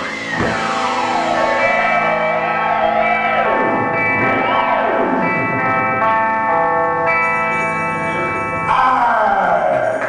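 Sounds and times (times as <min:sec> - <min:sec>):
guitar sweep falling in pitch: 0:00.0 - 0:08.7
echoing electric guitar chord: 0:00.0 - 0:08.8.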